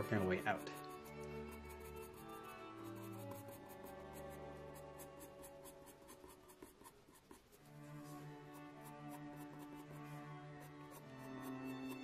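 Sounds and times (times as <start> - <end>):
pencil scratching on paper: 0.0 - 12.0
soft background music: 0.0 - 12.0.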